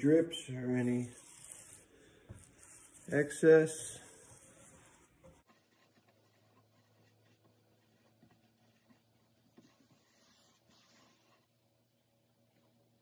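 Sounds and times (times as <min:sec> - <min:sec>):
paintbrush brushing: 0:00.8 - 0:11.6.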